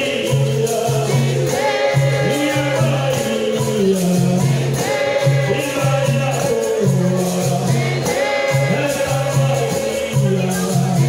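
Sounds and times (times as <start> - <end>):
chorus of voices singing: 0.0 - 11.0
percussion with tambourine: 0.0 - 11.0.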